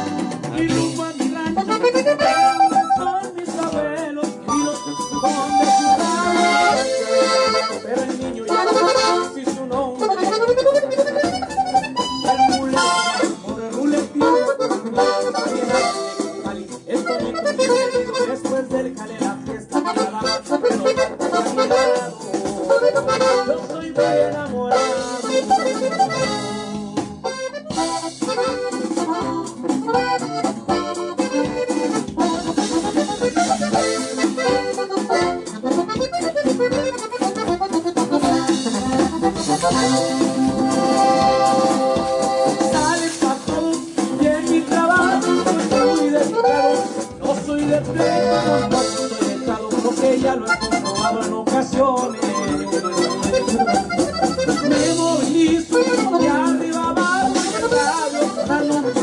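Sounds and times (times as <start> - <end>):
accordion melody: 0.0 - 59.0.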